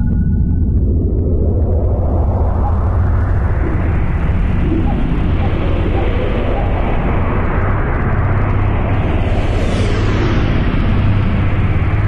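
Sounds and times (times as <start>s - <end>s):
deep hum: 0.0s - 12.0s
spaceship low rumble: 0.0s - 12.0s.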